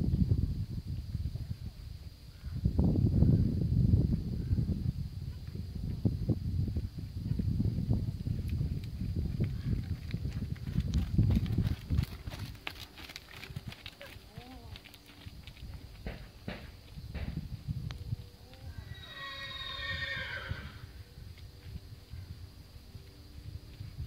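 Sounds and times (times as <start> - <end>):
hoofbeats on sand: 8.8 - 17.4
horse whinnying: 18.7 - 20.8.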